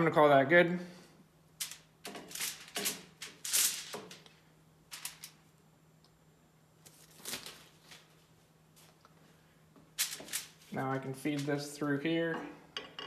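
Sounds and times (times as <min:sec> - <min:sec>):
aluminium foil crinkling: 0:01.6 - 0:05.4, 0:06.8 - 0:08.2, 0:10.0 - 0:11.5.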